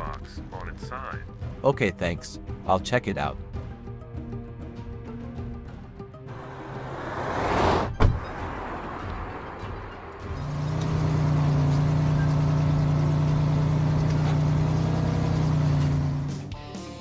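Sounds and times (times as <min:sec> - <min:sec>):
quiet background music: 0:00.0 - 0:13.6
truck engine running: 0:08.1 - 0:16.6.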